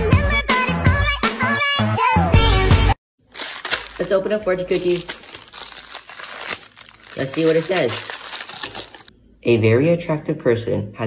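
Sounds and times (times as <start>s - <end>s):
plastic wrapper crinkling: 3.2s - 9.1s.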